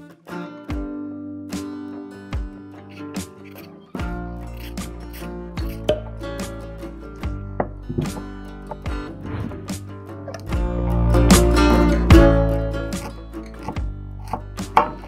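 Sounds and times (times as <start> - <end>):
acoustic guitar music with beat: 0.0 - 15.0
peeler scraping a carrot: 2.7 - 5.9, 12.6 - 15.0.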